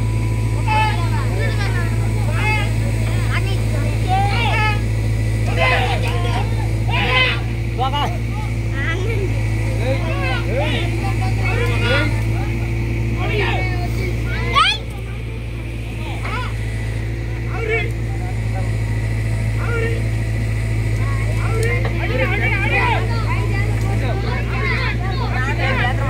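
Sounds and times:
diesel engine running: 0.0 - 26.0
people calling out: 0.0 - 26.0.

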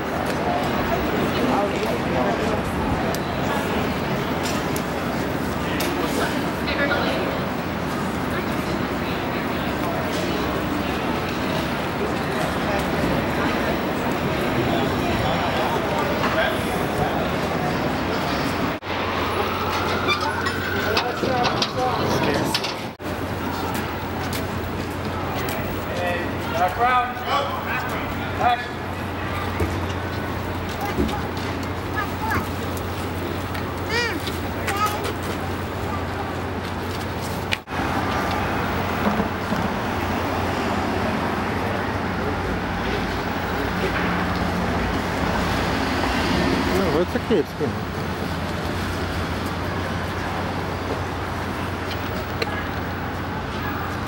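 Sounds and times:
indistinct voices: 0.0 - 54.0
traffic rumble: 0.0 - 54.0.

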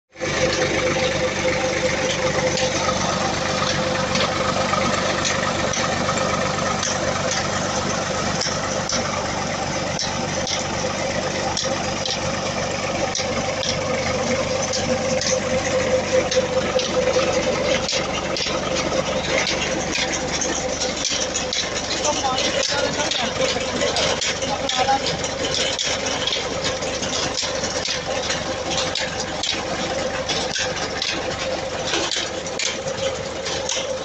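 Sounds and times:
tractor diesel engine humming: 0.1 - 34.0
irregular small clicks: 9.9 - 10.7, 16.2 - 34.0.

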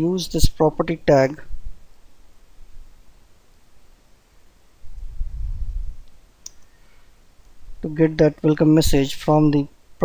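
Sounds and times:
person speaking: 0.0 - 1.5, 7.8 - 9.8
low rumble: 4.9 - 6.1.

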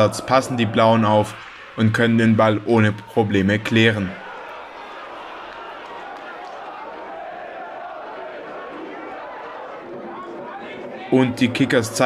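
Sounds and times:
stadium crowd murmur: 0.0 - 12.0.

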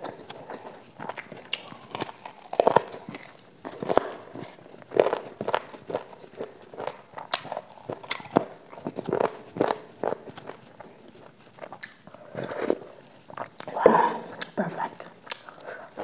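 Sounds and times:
person chewing: 0.0 - 16.0.

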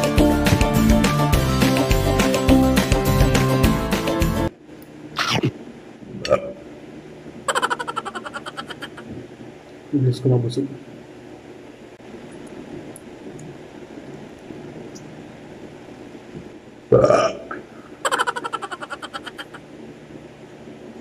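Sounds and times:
man burping: 5.2 - 5.6, 16.9 - 17.7.

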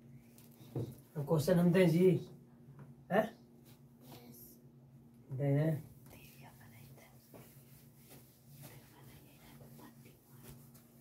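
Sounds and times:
hand wiping a whiteboard: 7.2 - 11.0.

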